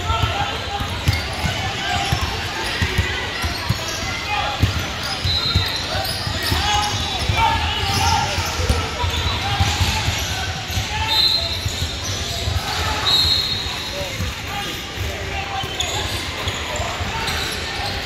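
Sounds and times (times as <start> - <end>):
voices echoing in a gym: 0.0 - 18.0.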